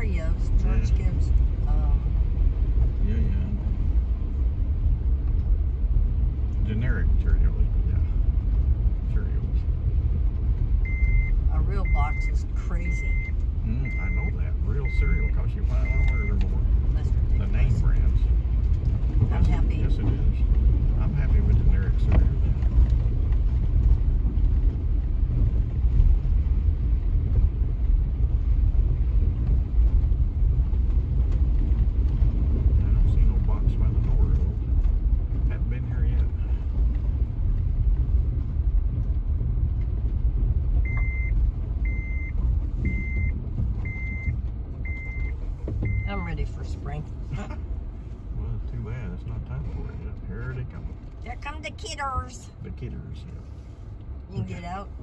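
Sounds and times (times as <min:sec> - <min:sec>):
vehicle engine and tyres rumbling: 0:00.0 - 0:55.0
dashboard warning chime: 0:10.9 - 0:16.4.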